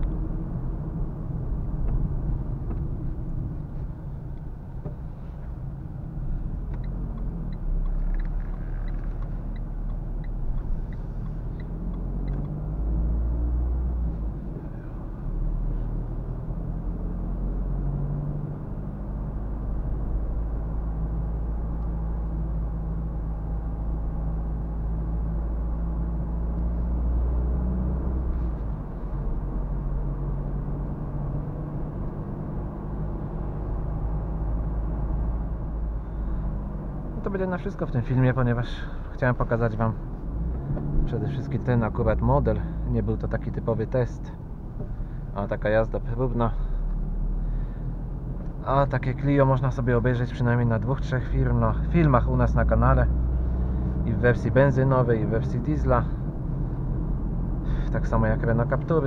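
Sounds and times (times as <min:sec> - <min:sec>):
car engine drone inside cabin: 0:00.0 - 0:59.0
tyre and road noise: 0:00.0 - 0:59.0.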